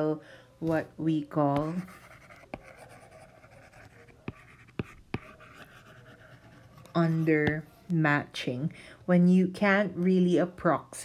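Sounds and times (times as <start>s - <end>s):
stylus scratching on glass: 1.6s - 7.6s.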